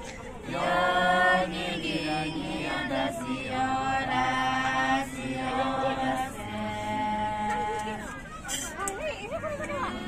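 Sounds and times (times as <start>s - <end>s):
group singing without instruments: 0.4s - 8.1s.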